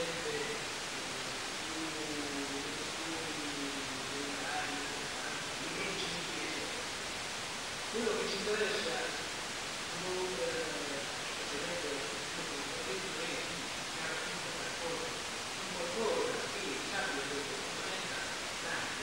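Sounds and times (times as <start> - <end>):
faint indistinct speech: 0.0 - 7.0, 7.9 - 9.3, 9.9 - 19.0
recording hiss: 0.0 - 19.0.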